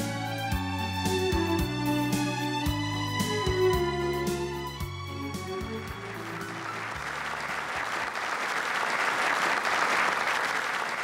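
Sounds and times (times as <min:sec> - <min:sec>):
music: 0:00.0 - 0:08.2
crowd applauding: 0:05.5 - 0:11.0.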